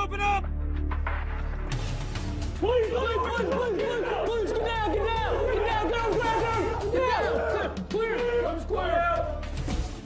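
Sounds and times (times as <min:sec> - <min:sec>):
background music with low drone: 0:00.0 - 0:10.0
men shouting: 0:02.6 - 0:09.5.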